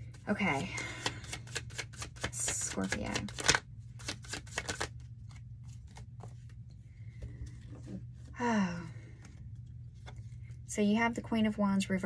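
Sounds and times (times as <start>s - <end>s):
cards being shuffled: 0.0s - 6.8s
low steady hum: 0.0s - 12.0s.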